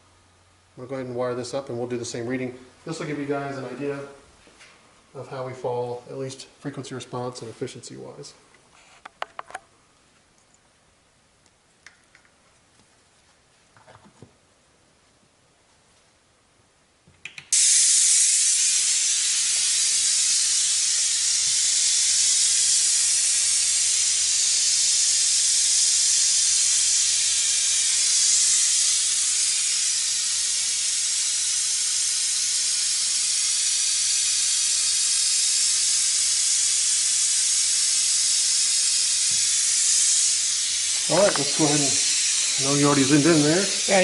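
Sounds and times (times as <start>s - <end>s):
pink noise hiss from tweeter: 0.0s - 44.0s.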